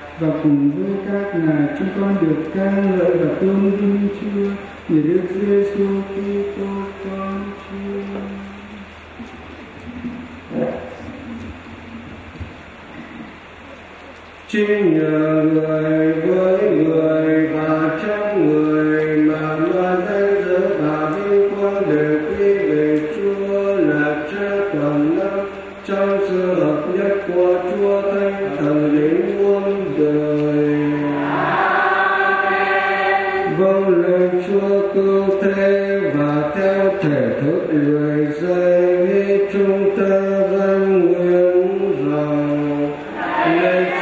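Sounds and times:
choir singing a slow chant: 29.0s - 33.9s, 42.7s - 44.0s.

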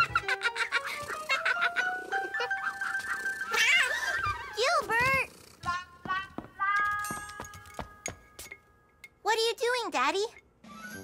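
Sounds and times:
cartoon background music: 0.0s - 4.5s.

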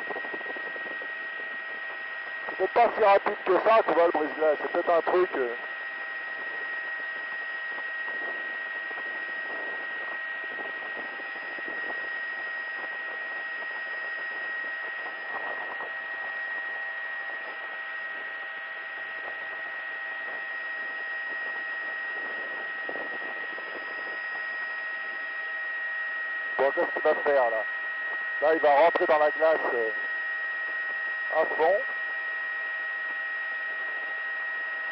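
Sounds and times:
aircraft cabin noise over intercom: 26.6s - 27.6s, 28.4s - 30.0s, 31.3s - 31.9s.

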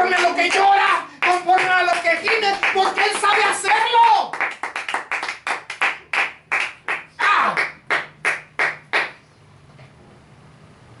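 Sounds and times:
man clapping hands: 0.0s - 9.2s
low room noise: 0.0s - 11.0s.

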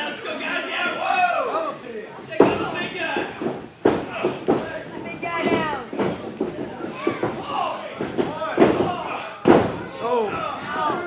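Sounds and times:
bodies thudding on ring mat: 2.3s - 11.0s.

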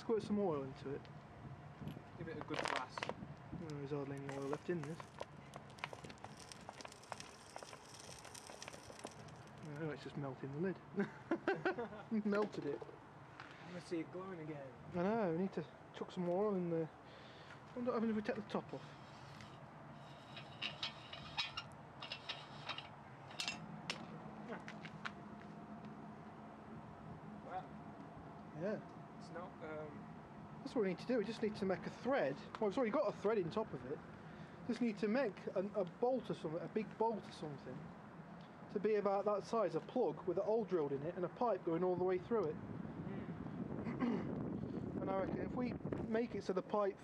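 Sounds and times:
fire crackling and ticking: 0.8s - 10.6s
light metallic clinks and taps: 20.3s - 24.0s.

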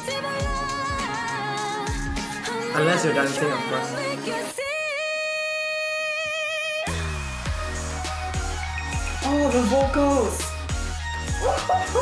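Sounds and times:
pop beat with deep bass: 0.0s - 4.4s, 6.9s - 12.0s.

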